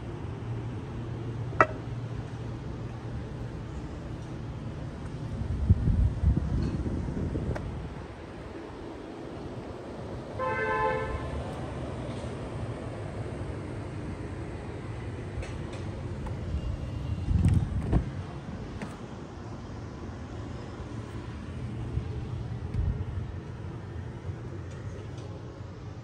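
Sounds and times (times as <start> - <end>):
wind: 0.0 - 26.0
vehicle horn toot: 10.4 - 11.4.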